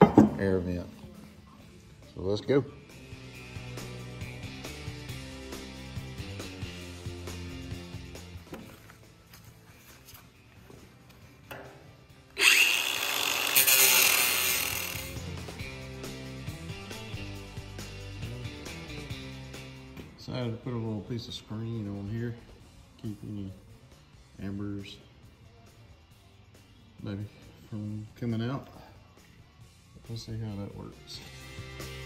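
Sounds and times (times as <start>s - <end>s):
background music: 0.0s - 32.0s
angle grinder cutting steel: 12.4s - 15.2s.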